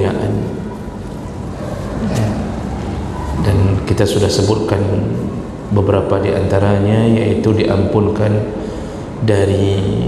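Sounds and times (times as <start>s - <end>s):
short vocal sound: 1.8s - 2.8s.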